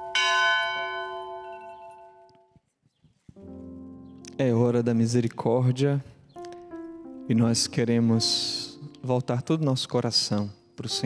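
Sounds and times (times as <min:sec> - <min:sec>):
bell ringing: 0:00.0 - 0:02.5.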